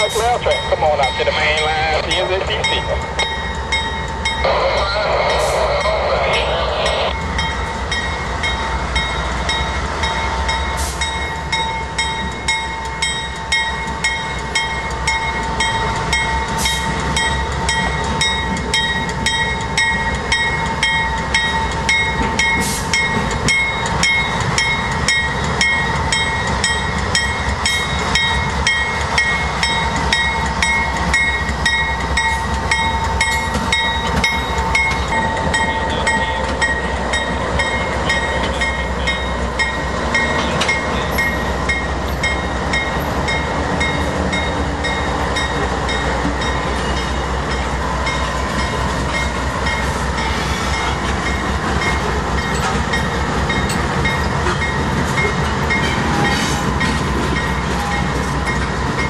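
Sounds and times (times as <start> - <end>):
locomotive engine rumble: 0.0 - 59.0.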